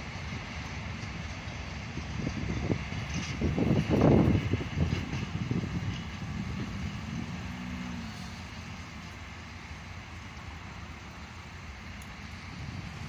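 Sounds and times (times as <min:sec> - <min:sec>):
road traffic rumble: 0:00.0 - 0:13.0
held engine tone: 0:01.4 - 0:13.0.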